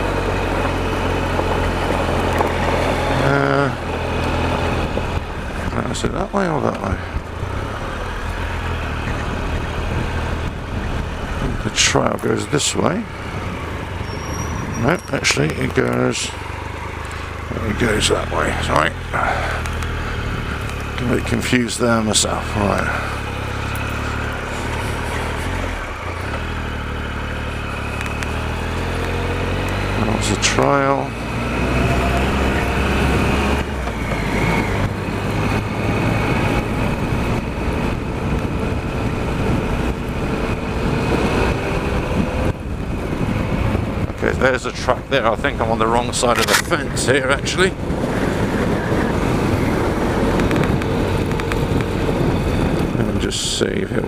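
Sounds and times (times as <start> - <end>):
motorcycle engine running at low revs: 0.0 - 54.0
wind: 0.0 - 54.0.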